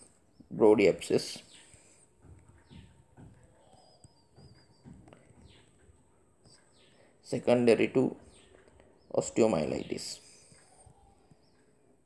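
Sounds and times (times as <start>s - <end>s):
faint high bird chirp: 0.0s - 11.8s
soft low knocks: 2.1s - 6.6s.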